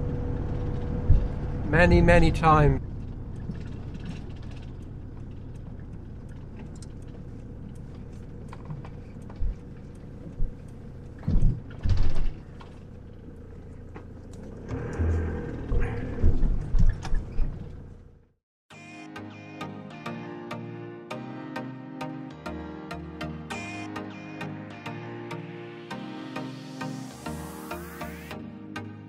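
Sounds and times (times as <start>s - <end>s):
campervan engine running: 0.0s - 18.4s
road rumble: 0.0s - 18.4s
thumps and rattles on rough track: 2.8s - 13.1s, 13.8s - 18.1s.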